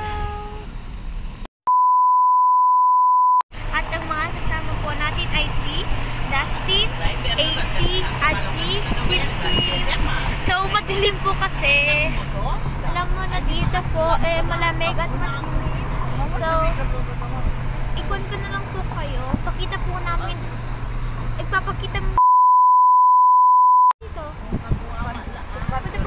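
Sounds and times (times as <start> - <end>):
vehicle engine and road hum: 0.0 - 1.5, 3.5 - 22.2, 24.0 - 26.0
voices chattering: 6.3 - 19.8
steady test-tone beep: 22.2 - 23.9.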